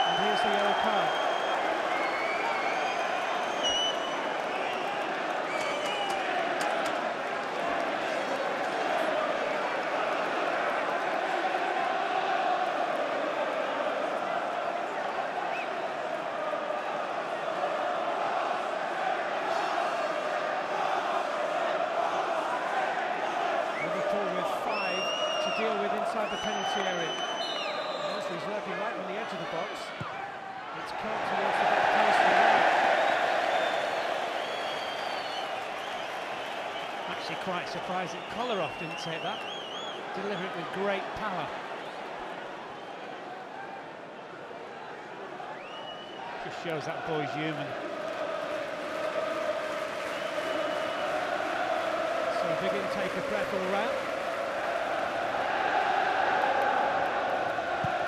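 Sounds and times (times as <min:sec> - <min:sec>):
crowd singing and chanting: 0:47.7 - 0:50.3.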